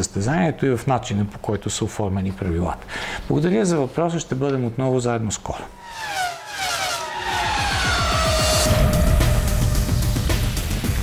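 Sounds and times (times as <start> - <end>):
race car engine passing by: 5.6 - 10.8
low engine rumble: 5.6 - 11.0
theme music: 5.7 - 11.0.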